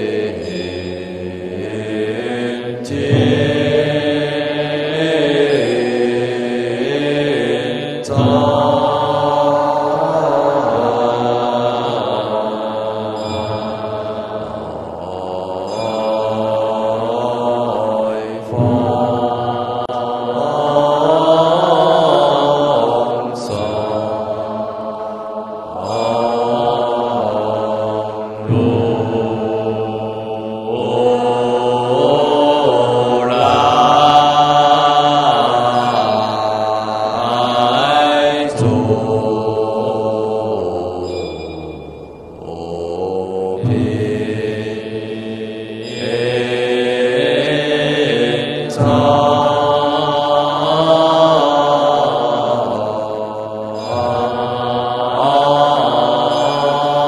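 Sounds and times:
lead cantor singing on microphone: 0:00.0 - 0:41.5
monks chanting: 0:00.0 - 0:57.0.

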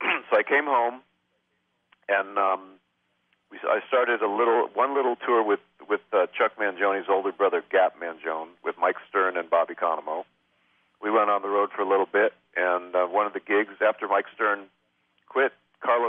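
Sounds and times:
man talking: 0:00.0 - 0:01.1, 0:02.1 - 0:02.8, 0:03.5 - 0:10.3, 0:11.0 - 0:14.7, 0:15.3 - 0:16.0.

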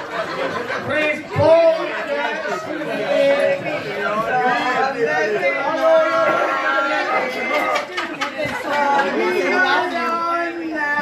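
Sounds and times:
lively chatter of voices: 0:00.0 - 0:11.0.

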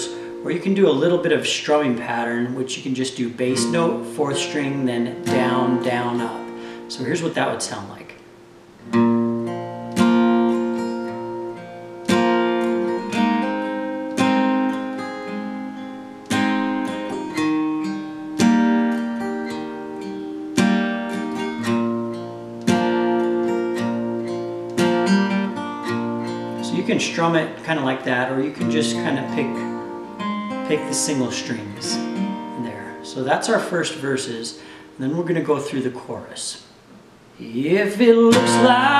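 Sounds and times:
acoustic guitar strumming: 0:00.0 - 0:36.0, 0:36.6 - 0:38.9.

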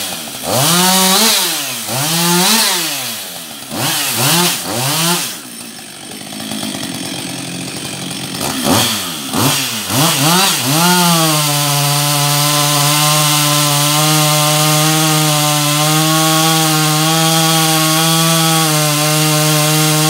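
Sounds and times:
chainsaw idling: 0:00.0 - 0:20.0
chainsaw revving: 0:00.0 - 0:20.0.

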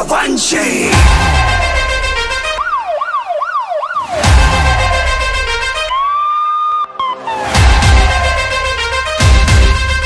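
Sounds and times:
background music: 0:00.0 - 0:10.0
siren wailing: 0:01.0 - 0:09.1.

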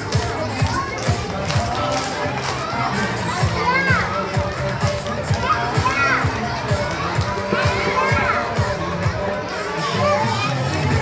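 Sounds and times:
children chattering: 0:00.0 - 0:11.0
upbeat dance music: 0:00.0 - 0:11.0.

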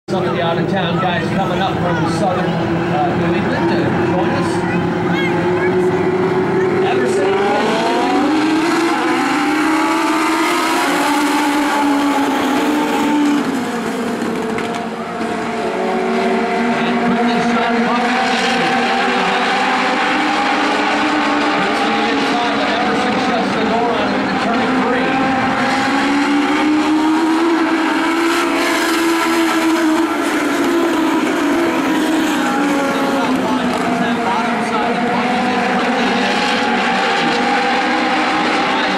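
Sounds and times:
race car engines revving: 0:00.1 - 0:38.9.

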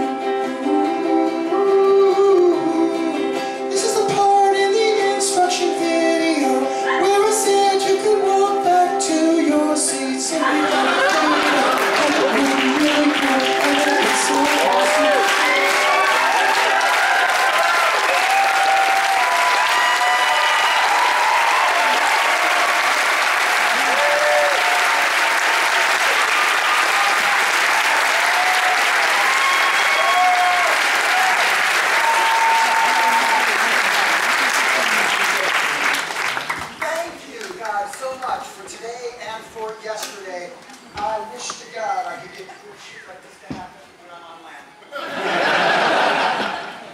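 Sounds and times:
audience applauding and cheering: 0:10.4 - 0:38.6
shouts and whoops: 0:13.7 - 0:33.8.

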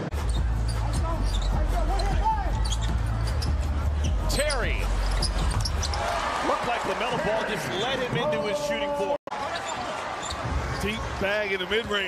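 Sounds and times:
sneakers squeaking on hardwood: 0:00.2 - 0:06.0, 0:09.4 - 0:10.8.

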